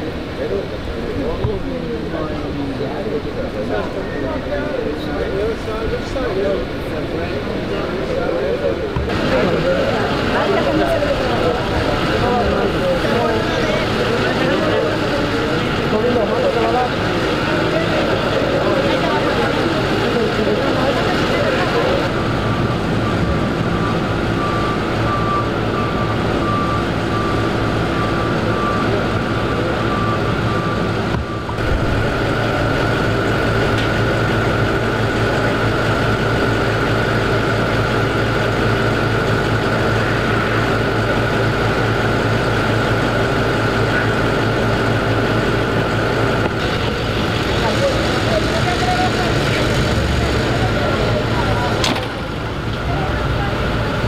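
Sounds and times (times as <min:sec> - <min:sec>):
trucks idling: 0:00.0 - 0:54.0
voices in the background: 0:00.0 - 0:54.0
steady high tone: 0:06.3 - 0:54.0
repeated beep: 0:22.1 - 0:31.9.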